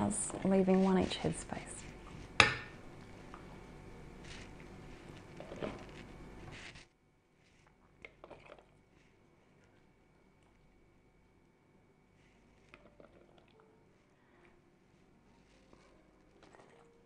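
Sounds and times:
food squelching: 0:04.2 - 0:06.8, 0:12.7 - 0:13.6.

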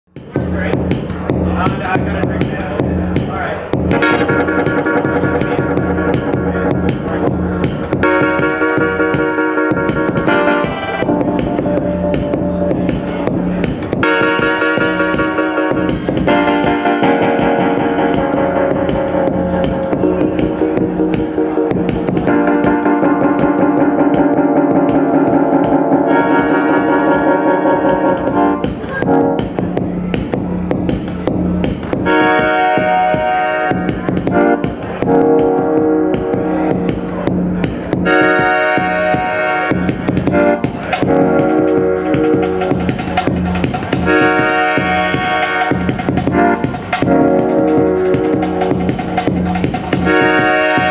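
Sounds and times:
synthesizer and keyboard chords: 0:00.1 - 0:50.9
steady ticking pulse: 0:00.2 - 0:50.9.

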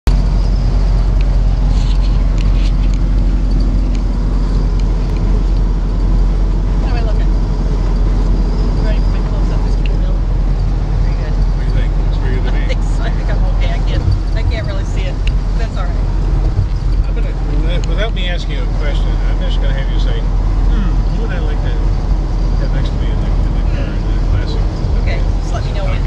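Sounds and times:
car engine and road drone: 0:00.0 - 0:26.0.

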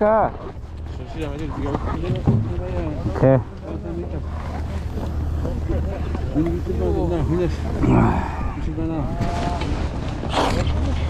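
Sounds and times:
steady low rumble: 0:00.3 - 0:11.0
people chattering: 0:01.0 - 0:11.0.

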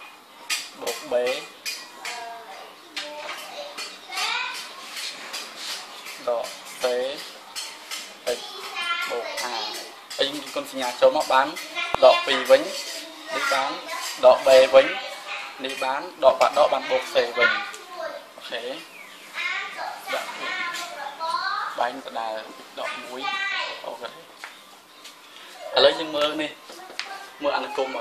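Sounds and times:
children talking: 0:00.0 - 0:28.0.

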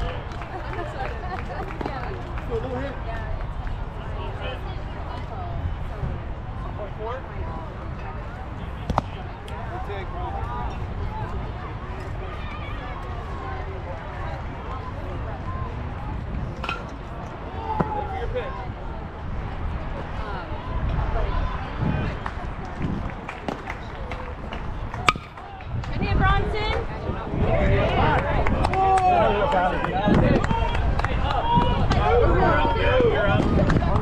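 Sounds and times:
people talking: 0:00.0 - 0:34.0
metal bat hitting ball: 0:25.0 - 0:25.4.

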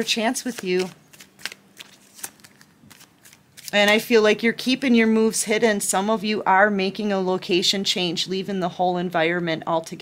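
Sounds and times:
cards being shuffled: 0:00.4 - 0:04.0.

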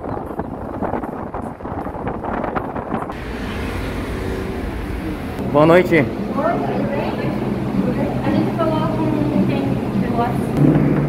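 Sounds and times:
car road noise: 0:00.0 - 0:08.9
wind buffeting microphone: 0:00.0 - 0:11.0
steady background hum: 0:03.1 - 0:11.0.

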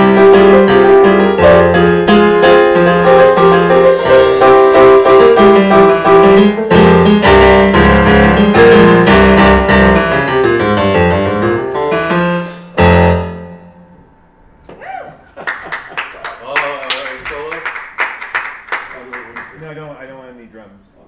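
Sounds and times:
digital piano playing: 0:00.0 - 0:14.6.

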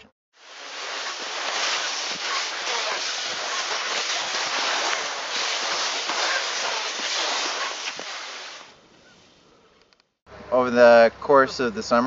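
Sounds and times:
skis gliding over snow: 0:00.4 - 0:08.8.

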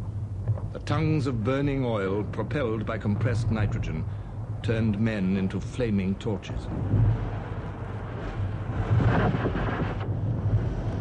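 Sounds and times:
steady low hum: 0:00.0 - 0:11.0
flamethrower roar: 0:06.7 - 0:11.0.

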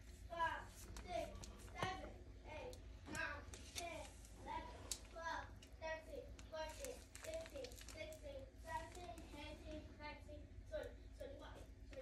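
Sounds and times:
faint children talking: 0:00.3 - 0:12.0.

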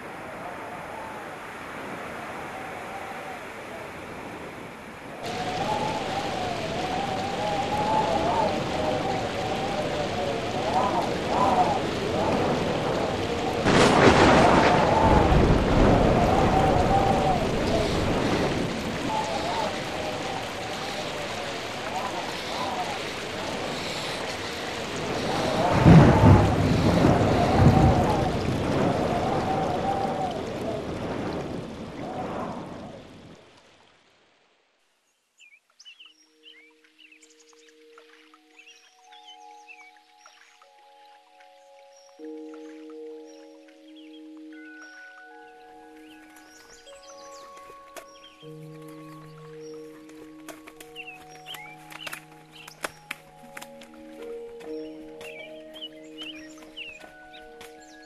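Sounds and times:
thunder rumble: 0:00.0 - 0:33.4
birds chirping faintly: 0:00.0 - 0:33.9, 0:34.9 - 0:58.0
heavy rain: 0:00.0 - 0:34.8, 0:36.4 - 0:58.0
slow soft music: 0:36.1 - 0:58.0.

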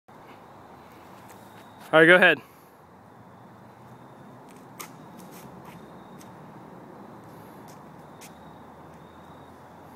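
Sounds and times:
outdoor ambience: 0:00.1 - 0:09.9.

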